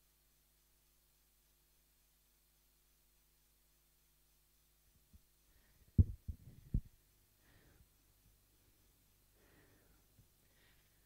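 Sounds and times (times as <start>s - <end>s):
thumps on lapel microphone: 6.0s - 6.9s.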